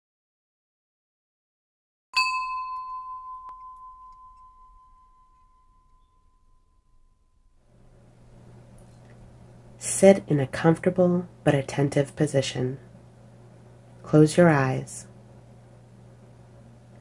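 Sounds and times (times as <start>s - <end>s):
meditation bell ringing: 2.2s - 7.7s.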